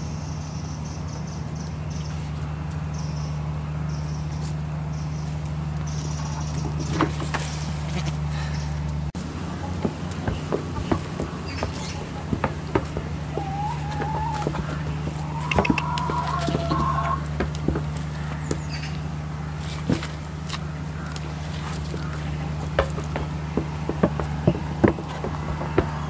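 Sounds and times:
steady low hum: 0.0s - 26.0s
hooves tapping on plastic tubs: 9.6s - 19.0s, 19.8s - 26.0s
hen clucking: 9.6s - 19.1s.

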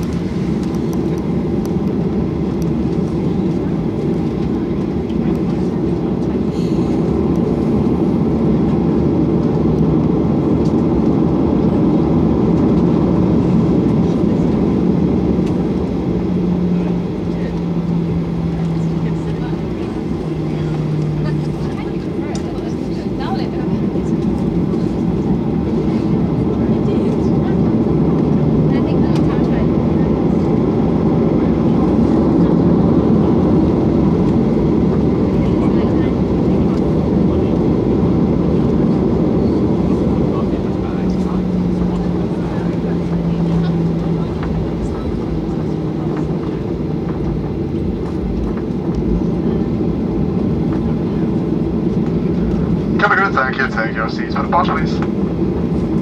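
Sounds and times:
jet engines rushing: 0.0s - 56.0s
low cabin hum: 0.0s - 56.0s.

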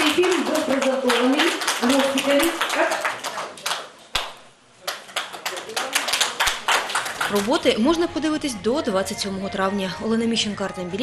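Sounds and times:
audience clapping: 0.0s - 7.7s.

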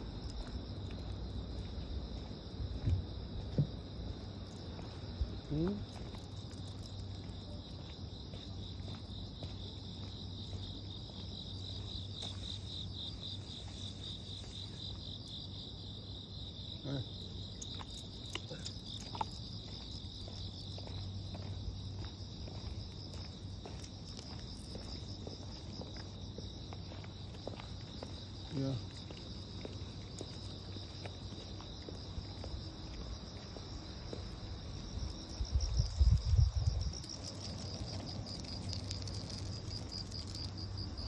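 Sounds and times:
insects singing: 3.6s - 41.0s.

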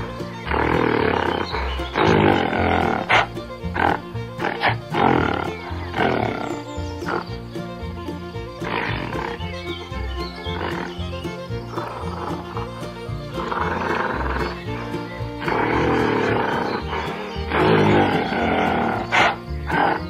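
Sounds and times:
background music with bass line: 0.0s - 20.0s.

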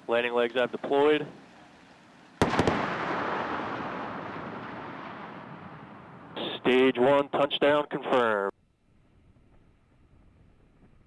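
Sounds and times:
low rumble: 2.4s - 6.6s
sonic booms: 2.4s - 6.8s.

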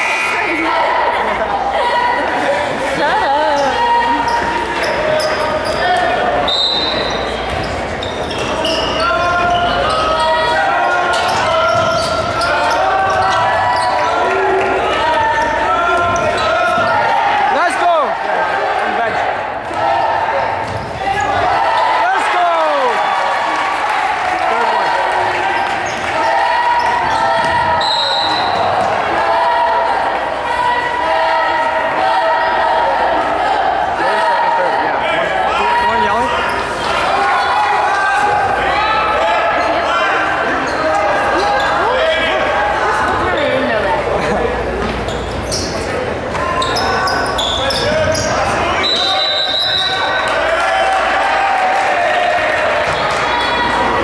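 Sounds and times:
echoing crowd voices: 0.0s - 54.0s.

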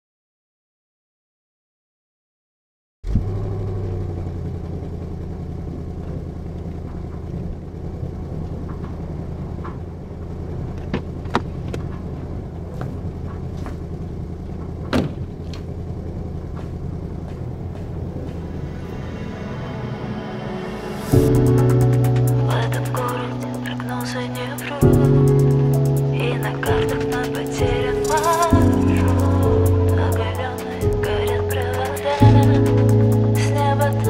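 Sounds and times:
low steady rumble: 3.1s - 34.0s.

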